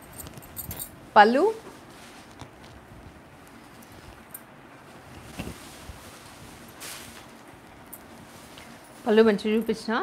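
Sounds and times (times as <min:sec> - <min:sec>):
fabric rustling: 0:00.0 - 0:10.0.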